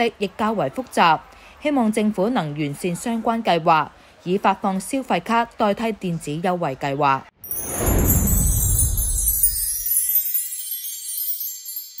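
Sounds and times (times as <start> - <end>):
shimmering chime tones: 7.4 - 12.0
low rumble: 7.5 - 9.8.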